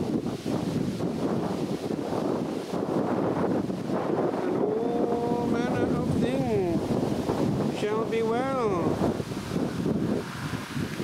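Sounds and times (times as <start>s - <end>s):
rushing wind noise: 0.0s - 11.0s.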